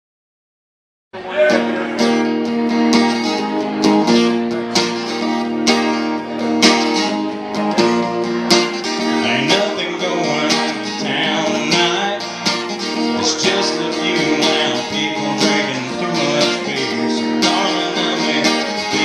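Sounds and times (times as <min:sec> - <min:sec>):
acoustic guitar strumming: 0:01.2 - 0:19.0.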